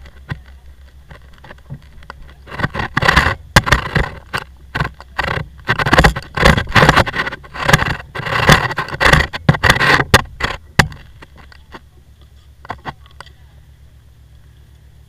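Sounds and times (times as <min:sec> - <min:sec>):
scraping and rustling in seats: 0:00.0 - 0:13.4.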